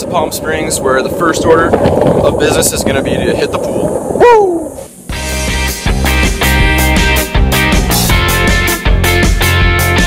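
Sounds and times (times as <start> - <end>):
man exclaiming ooh: 4.2 - 4.8
rock music with guitar: 5.1 - 10.0.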